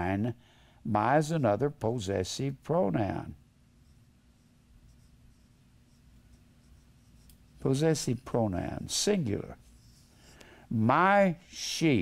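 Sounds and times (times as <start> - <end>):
low steady hum: 0.0 - 12.0
marker writing on whiteboard: 3.8 - 10.4.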